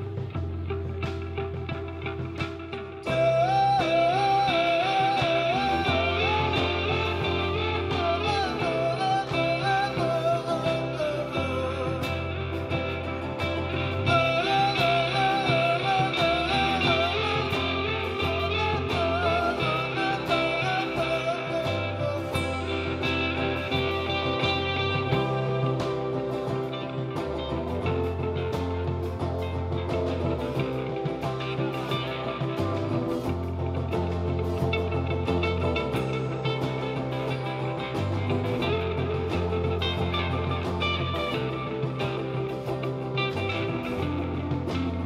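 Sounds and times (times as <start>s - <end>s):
bass line: 0.0s - 45.0s
drums: 0.0s - 45.0s
electric guitars: 0.0s - 45.0s
man singing: 3.0s - 26.2s.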